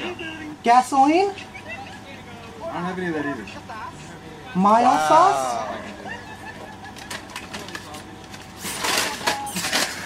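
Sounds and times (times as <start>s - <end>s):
faint mixed speech: 1.3s - 10.0s
breathy laughter: 5.7s - 7.4s.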